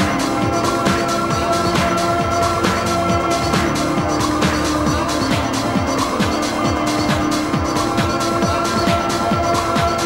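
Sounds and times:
hi-hats: 0.0 - 10.0.

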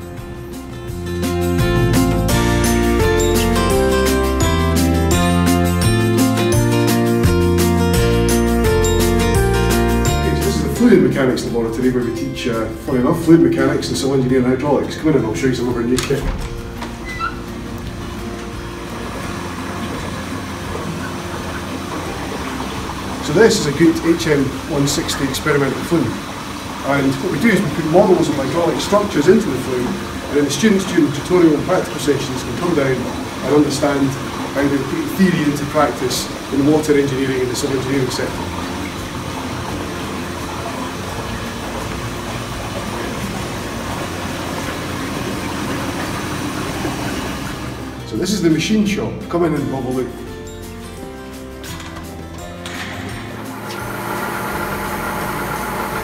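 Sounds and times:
pump humming: 0.0 - 48.1, 52.6 - 56.0
water rushing through channel: 7.2 - 48.9, 52.8 - 56.0.

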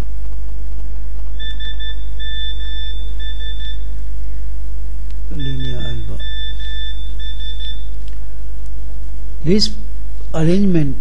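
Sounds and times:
low electrical hum: 0.0 - 11.0
high electronic beeping: 1.4 - 3.9, 5.3 - 7.9.

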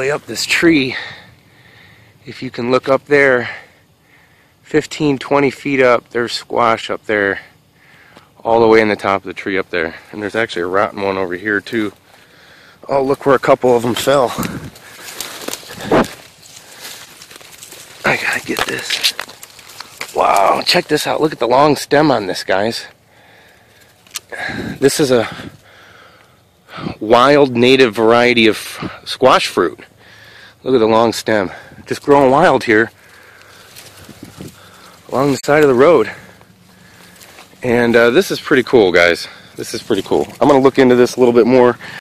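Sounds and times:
footsteps crunching through dry leaves: 12.9 - 21.4, 31.9 - 42.0.

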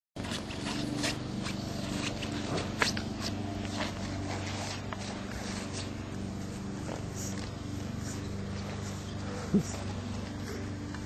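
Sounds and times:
puppy gnawing a shoe: 0.2 - 11.0.

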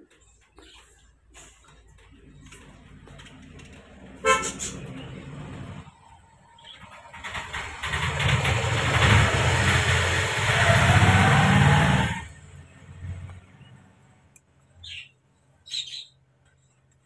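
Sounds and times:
vehicle engine passing: 1.9 - 14.2
vehicle horn toot: 4.2 - 4.9.

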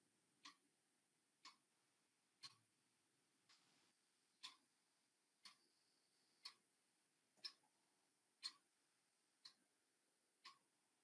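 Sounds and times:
clock ticking: 0.0 - 3.7, 4.3 - 11.0.

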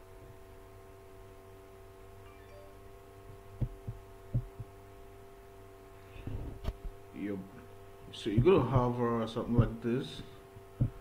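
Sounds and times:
faint steady hum: 0.0 - 11.0
soft low thumps: 3.2 - 4.8, 8.1 - 11.0.

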